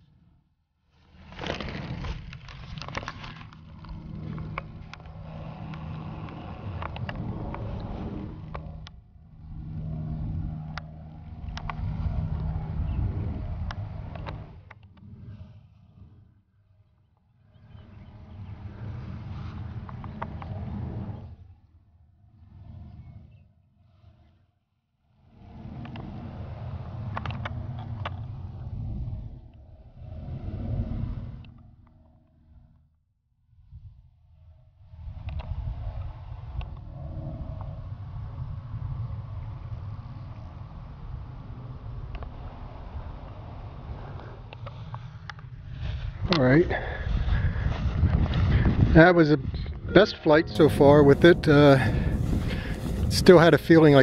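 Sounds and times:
wind buffeting microphone: 0:02.3 - 0:16.3, 0:17.5 - 0:21.5, 0:25.3 - 0:31.8, 0:34.8 - 0:54.0.

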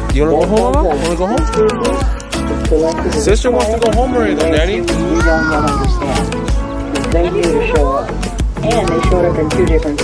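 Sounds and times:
music with steady low beat: 0:00.0 - 0:10.0.

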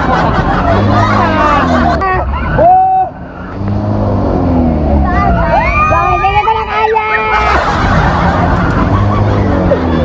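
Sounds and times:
riders laughing and shouting: 0:00.0 - 0:10.0.

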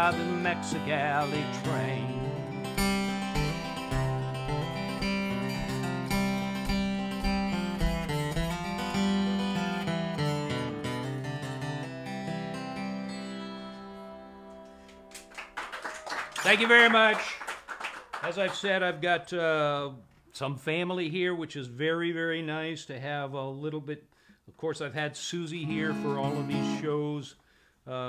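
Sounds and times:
acoustic guitar playing: 0:00.0 - 0:15.3, 0:25.6 - 0:27.2.

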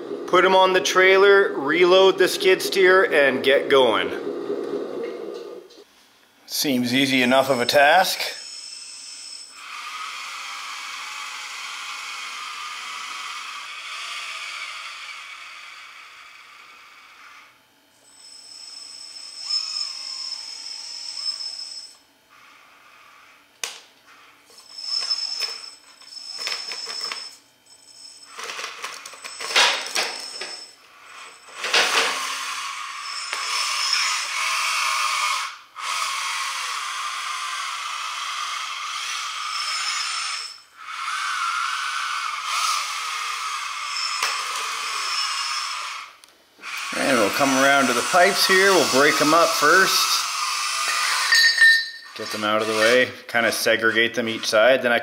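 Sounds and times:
electric motors whining: 0:00.0 - 0:05.9, 0:06.6 - 0:54.8.

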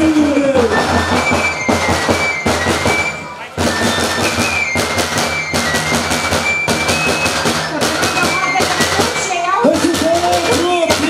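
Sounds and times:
frame drums beating: 0:00.0 - 0:11.0
high piping melody: 0:00.0 - 0:11.0.

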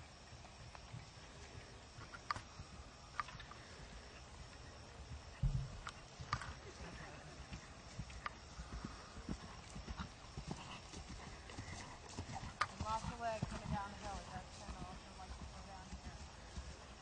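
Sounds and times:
horse hooves on grass: 0:00.0 - 0:17.0
heavy hoof thump: 0:05.4 - 0:06.0.

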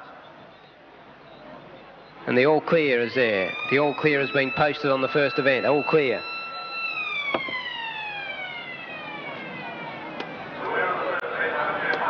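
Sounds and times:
siren winding down: 0:02.3 - 0:11.2.

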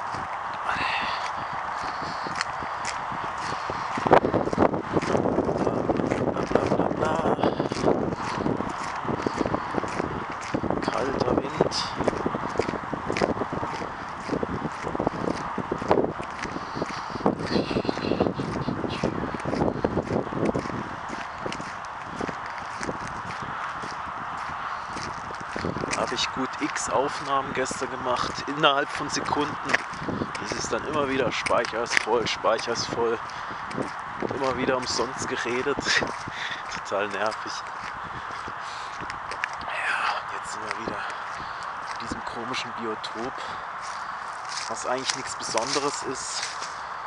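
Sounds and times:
wind rushing: 0:00.0 - 0:42.6
footsteps on gravel: 0:00.0 - 0:47.0.

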